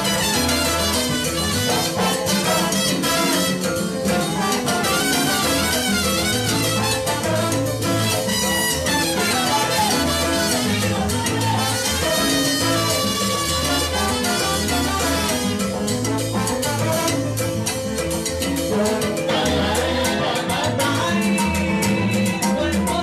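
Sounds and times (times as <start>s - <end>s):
trombones and saxophone chords: 0.0s - 17.8s, 18.8s - 19.8s
keyboard piano: 0.0s - 23.0s
repeating bass line: 0.0s - 23.0s.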